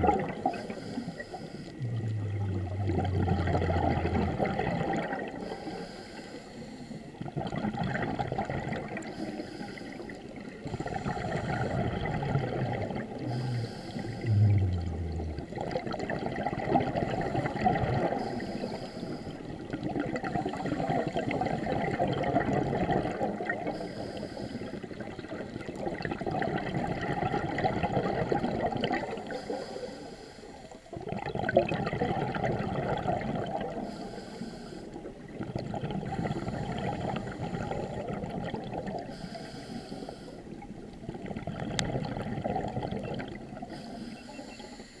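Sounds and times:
underwater regulator breathing bubbles: 0.0 - 30.4, 31.0 - 45.0
low hum falling in pitch: 14.2 - 15.5.

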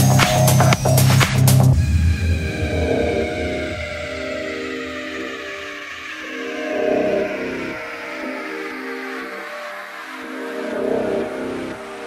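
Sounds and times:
minimal electronic music: 0.0 - 12.0.

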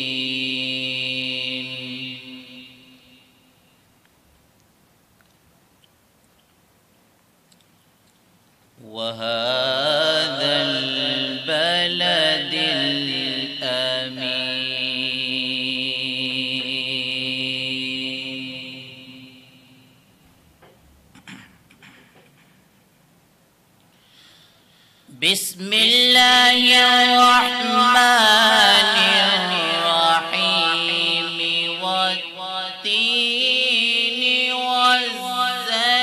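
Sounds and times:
man chanting recitation: 0.0 - 3.3, 8.8 - 20.0, 25.1 - 36.0.

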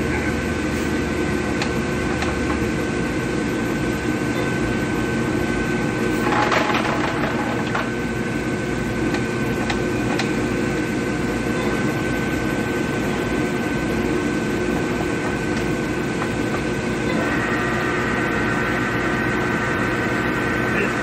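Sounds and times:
higher machine whine: 0.0 - 21.0
drill motor and gear hum: 10.0 - 21.0.

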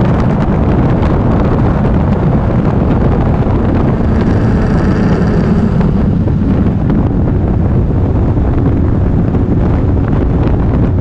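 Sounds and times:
motorcycle engine running: 0.0 - 11.0
wind buffeting microphone: 0.0 - 11.0.

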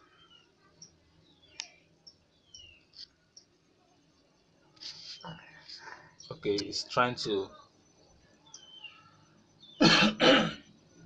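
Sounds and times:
faint sharp clicks: 0.8 - 3.5.

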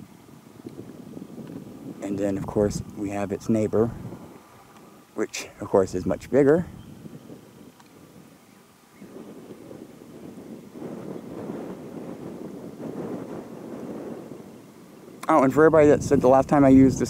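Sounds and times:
muffled wind rush on microphone: 0.0 - 17.0.

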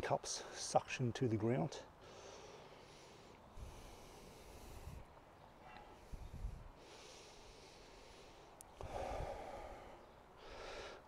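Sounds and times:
soft breathing through nose: 2.0 - 11.0.

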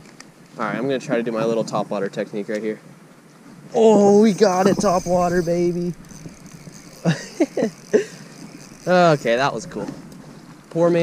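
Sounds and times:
man laughing: 7.0 - 8.3.

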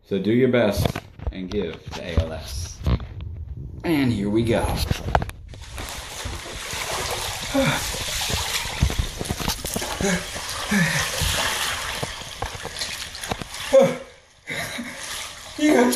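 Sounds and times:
water sloshing in bathtub: 4.7 - 15.9
ice clicking against tub: 5.6 - 13.7
man gasping and sighing: 7.4 - 8.2, 9.8 - 11.5.

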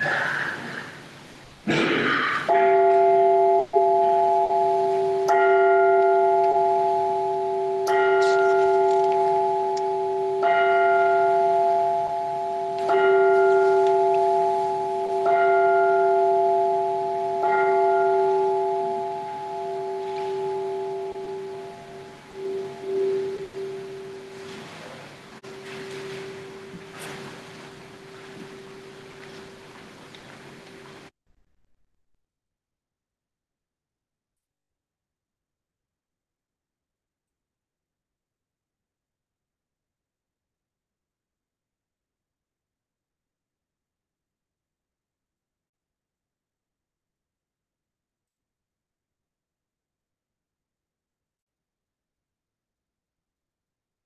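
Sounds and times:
bell ringing: 2.5 - 24.8.

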